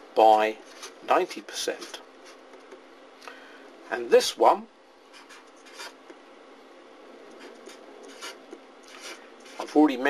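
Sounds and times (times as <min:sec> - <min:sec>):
marker pen writing on paper: 0:00.6 - 0:02.8, 0:05.1 - 0:06.2, 0:07.3 - 0:09.9.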